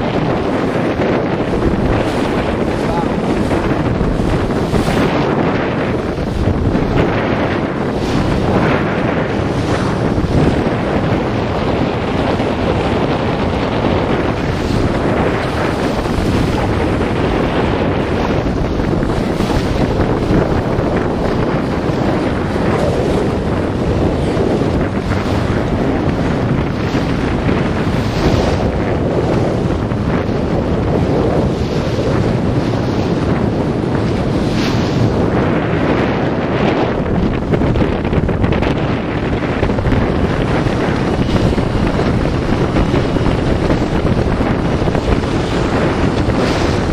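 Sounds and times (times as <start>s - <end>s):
boat running noise: 0.0s - 46.9s
water washing: 0.0s - 46.9s
wind buffeting microphone: 0.0s - 46.9s.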